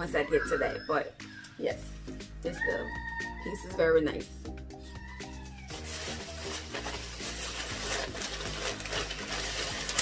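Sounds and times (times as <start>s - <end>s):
plastic bags rustling: 5.6s - 10.0s.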